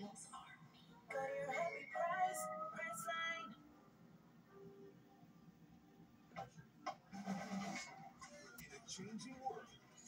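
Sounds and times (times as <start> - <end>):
sung commercial jingle on television: 0.0 - 10.0.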